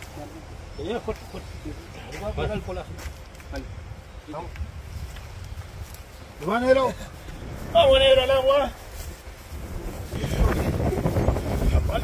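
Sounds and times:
wind buffeting microphone: 1.0 - 12.0.

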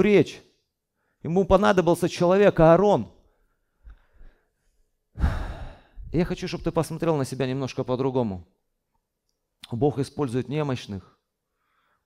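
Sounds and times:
man sighing heavily: 5.2 - 6.1.

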